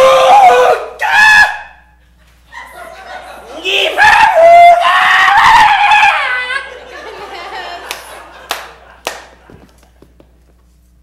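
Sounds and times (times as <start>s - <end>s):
man screaming: 0.0s - 1.8s, 3.6s - 6.7s.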